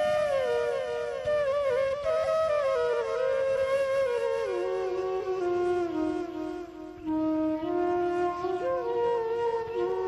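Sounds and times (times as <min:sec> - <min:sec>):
slow wind instrument melody: 0:00.0 - 0:10.0.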